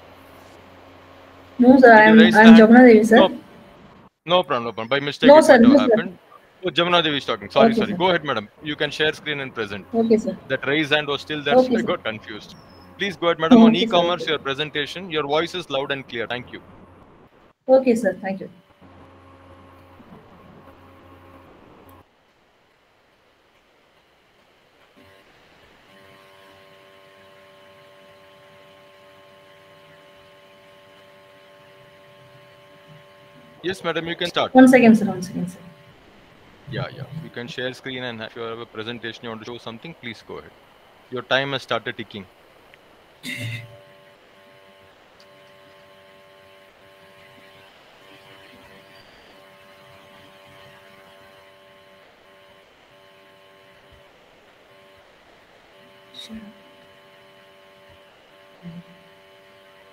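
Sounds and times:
faint electrical hum: 0.0s - 59.9s
low hiss: 0.0s - 59.9s.

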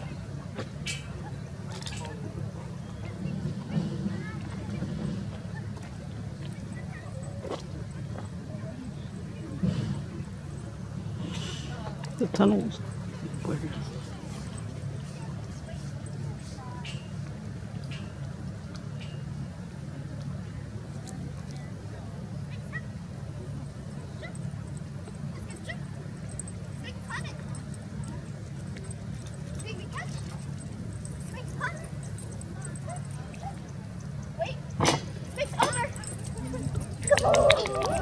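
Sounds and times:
faint distant voices: 0.0s - 38.0s
steady low hum: 0.0s - 38.0s.

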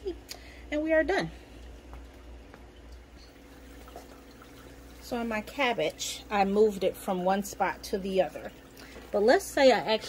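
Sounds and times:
water trickling: 1.5s - 10.0s.

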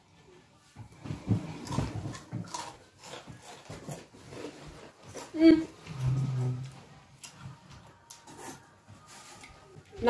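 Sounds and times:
chips crunching while chewing: 1.6s - 5.4s.

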